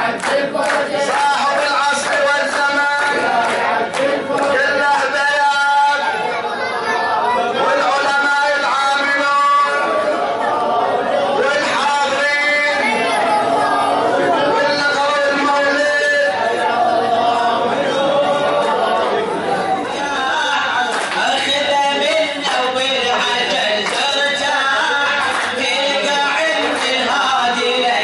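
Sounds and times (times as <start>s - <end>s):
man singing into microphone: 0.0s - 6.3s, 7.5s - 10.4s, 11.1s - 28.0s
crowd talking over one another: 0.0s - 28.0s
man speaking over a microphone: 7.5s - 10.1s, 11.3s - 13.1s, 14.3s - 16.4s.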